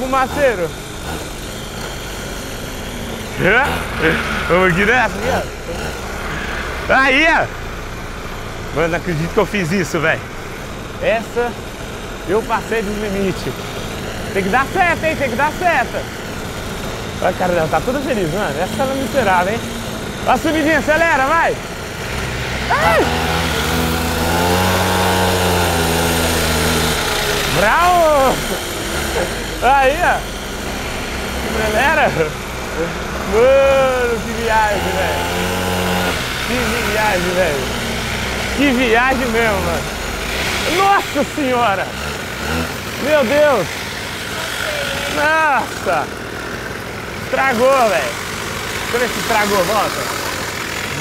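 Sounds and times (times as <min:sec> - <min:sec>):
mini motorcycle engine running: 0:00.0 - 0:51.0.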